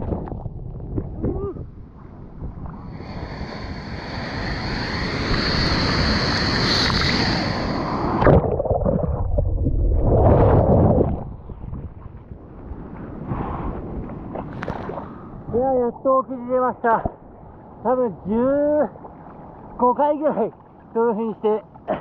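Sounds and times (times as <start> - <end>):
sea water rushing and splashing: 1.8 - 22.0.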